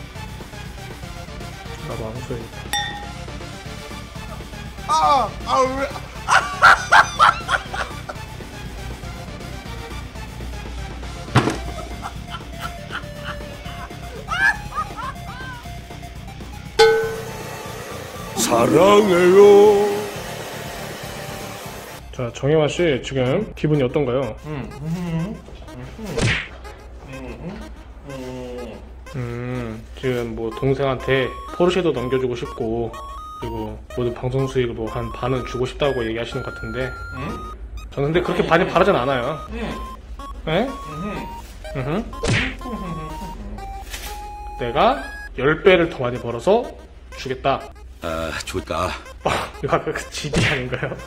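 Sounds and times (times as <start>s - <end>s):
light background music: 0.0s - 51.0s
hair dryer blowing: 17.2s - 22.0s
comic whack with rising swish: 42.2s - 42.6s.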